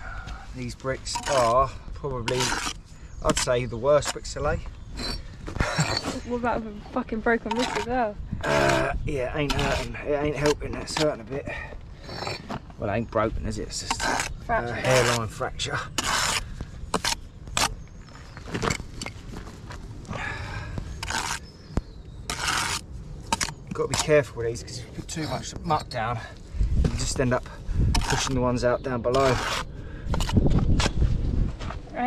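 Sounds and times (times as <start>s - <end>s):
trowel scraping brick: 1.0s - 6.4s, 7.4s - 11.2s, 12.0s - 12.5s, 13.7s - 17.8s, 21.0s - 21.5s, 22.3s - 24.3s, 27.9s - 30.5s
trowel knocking and scraping brick: 13.8s - 17.7s.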